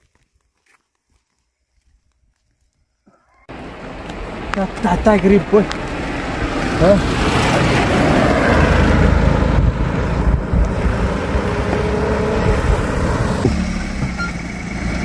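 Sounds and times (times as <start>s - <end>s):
cars driving past: 3.5s - 15.0s
small car engine humming: 3.5s - 15.0s.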